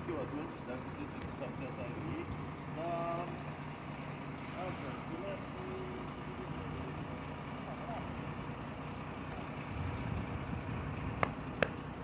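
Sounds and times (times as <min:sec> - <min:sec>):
fire truck engine rumbling: 0:00.0 - 0:12.0.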